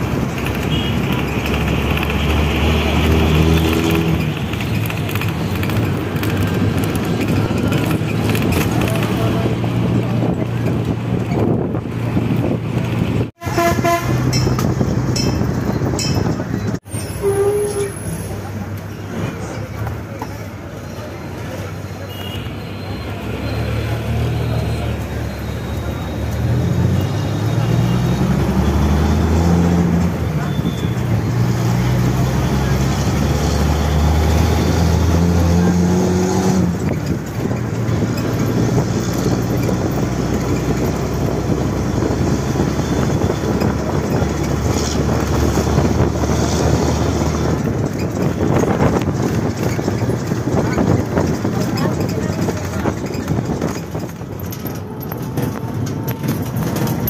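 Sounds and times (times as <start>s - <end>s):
bus engine: 0.0s - 57.0s
road noise: 0.0s - 57.0s.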